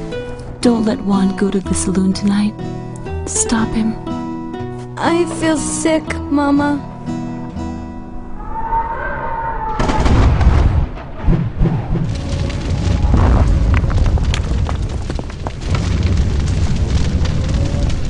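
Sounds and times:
lightning crash: 9.2 - 18.0
rumbling explosion boom: 9.7 - 18.0.

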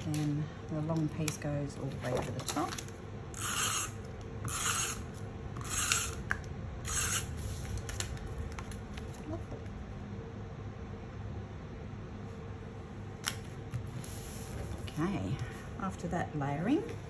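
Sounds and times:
tape runner rasping on cardstock: 5.6 - 6.2, 6.9 - 7.3.

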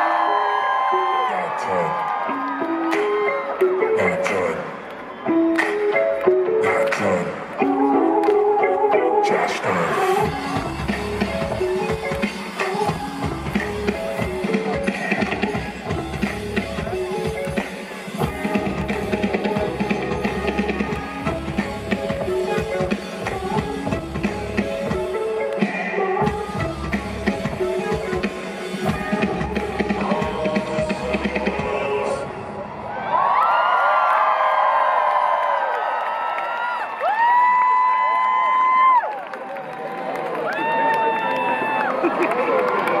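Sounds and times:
crowd screaming and cheering: 0.0 - 43.0
live rock band: 10.1 - 32.1
pounding drum kit: 10.2 - 25.1, 26.2 - 32.0.

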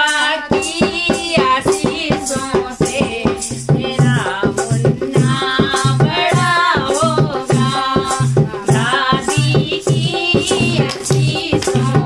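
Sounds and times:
dholak drum: 0.0 - 12.0
women singing: 0.0 - 12.0.

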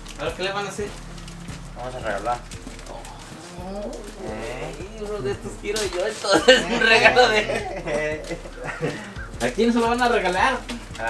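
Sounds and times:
men talking: 0.0 - 11.0.

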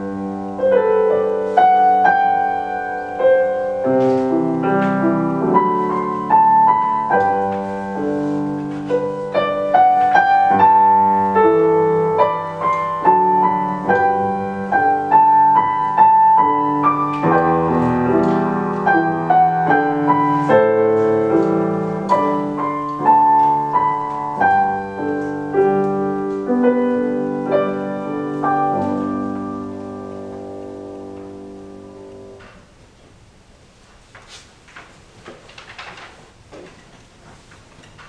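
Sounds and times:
grand piano playing: 0.0 - 32.9.

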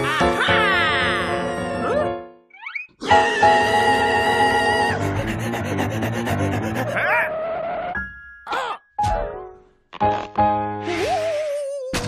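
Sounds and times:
background music: 0.0 - 2.4, 3.0 - 11.4.

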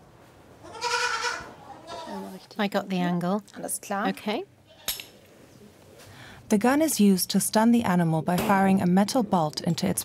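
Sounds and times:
young goat bleating: 0.6 - 2.4.

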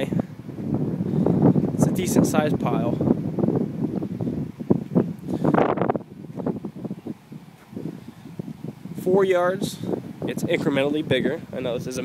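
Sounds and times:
wind on microphone: 0.0 - 12.0
footsteps on pavement: 7.5 - 7.8.

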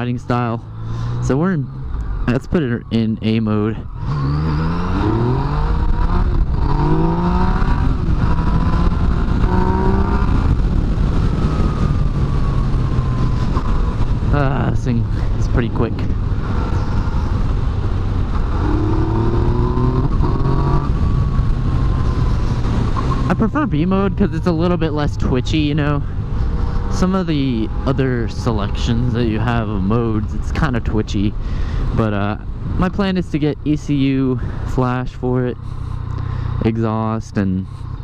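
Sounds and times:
motorcycle engine revving: 0.0 - 38.0
wind rush on microphone: 3.8 - 34.8.

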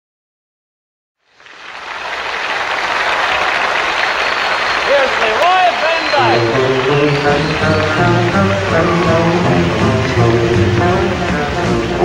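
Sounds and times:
audience applause: 1.3 - 12.0.

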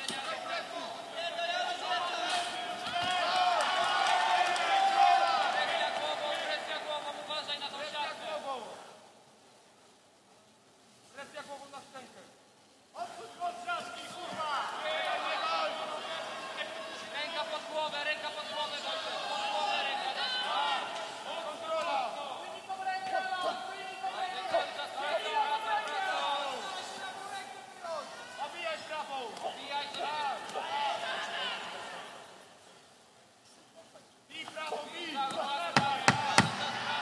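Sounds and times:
people shouting over one another: 18.6 - 28.5.

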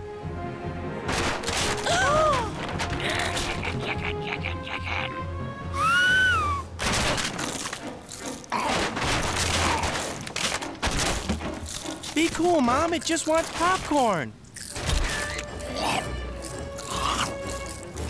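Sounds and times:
cartoon background music: 0.0 - 18.0
thumps and crashes: 1.1 - 3.7, 6.8 - 14.1.

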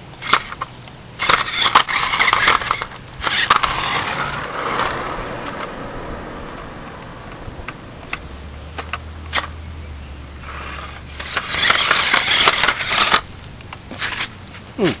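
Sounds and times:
toy car clicking on concrete: 0.2 - 5.9, 10.4 - 14.6
toy car scraping and clattering: 0.2 - 5.9, 10.4 - 13.3, 13.9 - 14.6.

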